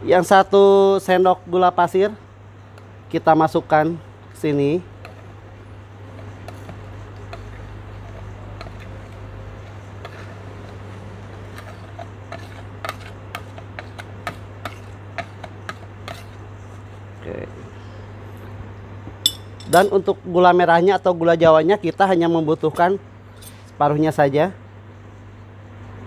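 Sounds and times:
steady low hum: 0:00.0 - 0:26.0
sugar being scooped: 0:06.0 - 0:16.8
spoon clicking on plate and glass: 0:19.3 - 0:20.0.

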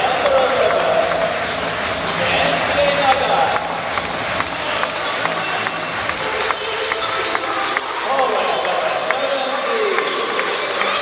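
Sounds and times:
crowd voices: 0:00.0 - 0:11.0
music over loudspeakers: 0:00.0 - 0:11.0
people clapping: 0:00.0 - 0:11.0.

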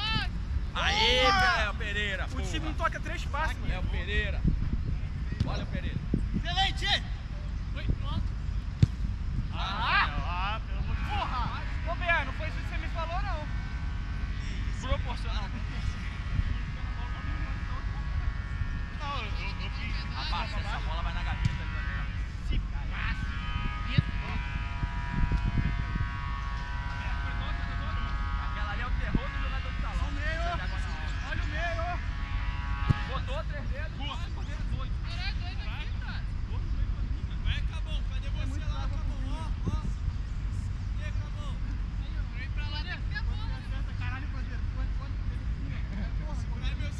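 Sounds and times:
distant shouts of players: 0:00.0 - 0:03.2, 0:09.5 - 0:36.1
wind rumble on microphone: 0:00.0 - 0:46.9
steady multi-pitched drone: 0:11.3 - 0:34.2.

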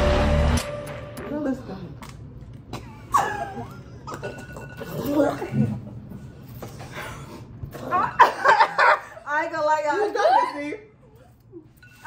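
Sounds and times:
people laughing: 0:07.9 - 0:09.3.

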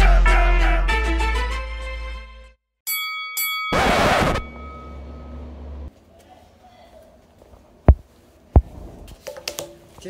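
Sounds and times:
bell-like tones: 0:02.9 - 0:05.6
loud burst of noise: 0:03.8 - 0:04.6
low hum: 0:03.8 - 0:05.9.

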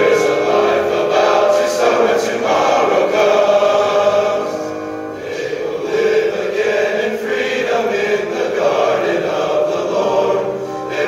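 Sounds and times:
male choir singing: 0:00.0 - 0:11.0
piano accompaniment: 0:00.0 - 0:11.0.

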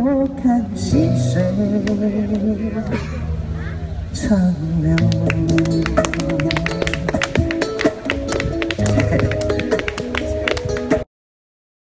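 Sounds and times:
held guitar chords: 0:00.0 - 0:11.0
cajon slaps: 0:05.0 - 0:11.0.

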